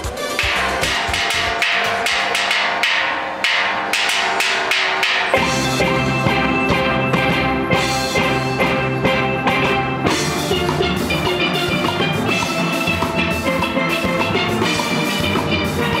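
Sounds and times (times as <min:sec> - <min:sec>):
steel band playing: 0:00.0 - 0:16.0
deep bass notes: 0:05.4 - 0:16.0.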